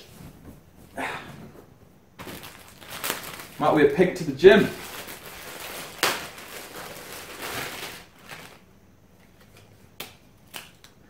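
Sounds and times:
plastic bag crinkling and rustling: 2.2s - 9.6s.

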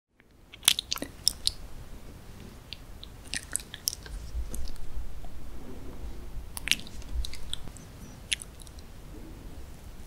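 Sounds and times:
wet chewing mouth clicks: 0.6s - 1.6s, 2.7s - 4.8s, 6.6s - 8.9s.

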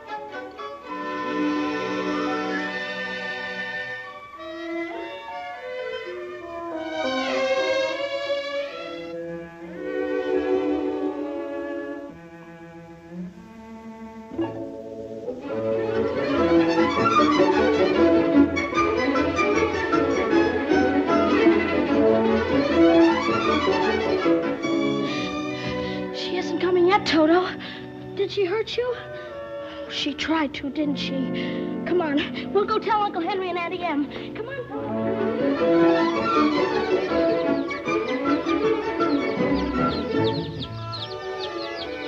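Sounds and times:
orchestral score with violins: 0.0s - 42.0s.

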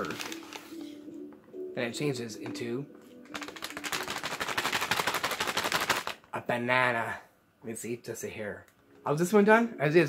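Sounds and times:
paper bag crackling: 0.0s - 1.1s, 3.2s - 6.3s.

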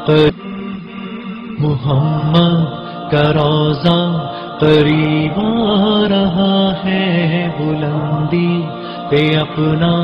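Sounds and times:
man singing devotional song: 0.0s - 10.0s.

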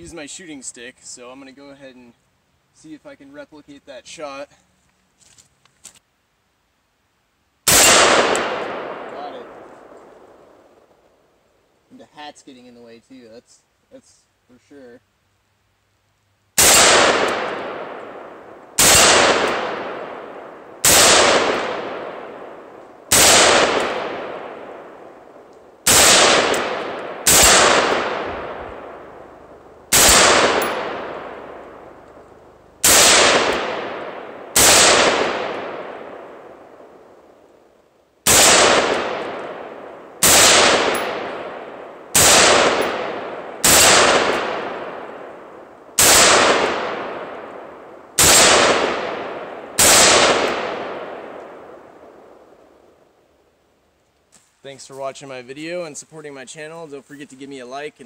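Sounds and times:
rifle shots: 7.7s - 10.4s, 16.6s - 32.2s, 32.8s - 37.1s, 38.2s - 52.4s.

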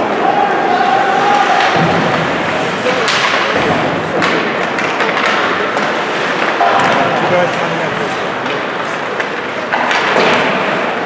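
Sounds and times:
arena background noise: 0.0s - 11.0s
hockey sticks and puck striking: 0.0s - 11.0s.

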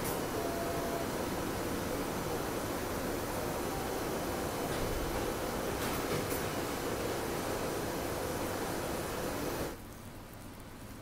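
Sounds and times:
soldering machine rushing noise: 0.0s - 9.8s.

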